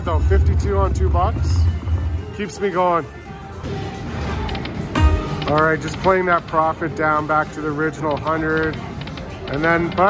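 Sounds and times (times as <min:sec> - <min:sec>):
slot machine electronic tones: 0:05.0 - 0:06.2.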